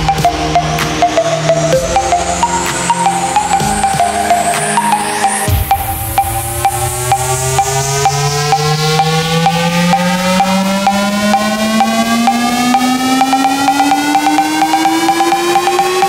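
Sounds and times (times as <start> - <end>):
fast ticking percussion: 0.0 - 16.0
repeated higher synth note: 0.0 - 16.0
rising synth tone: 0.0 - 16.0.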